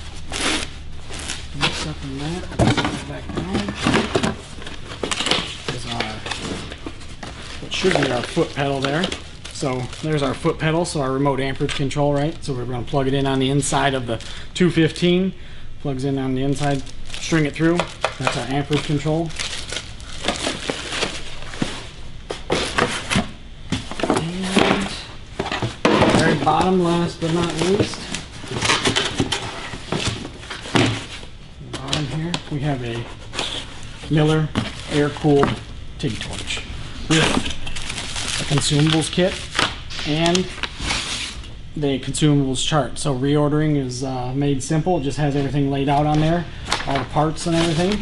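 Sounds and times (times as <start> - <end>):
cardboard rustling and scraping: 0.0 - 10.5, 17.3 - 41.4, 45.4 - 48.0
cardboard boxes knocking together: 2.4 - 8.2, 20.2 - 31.2.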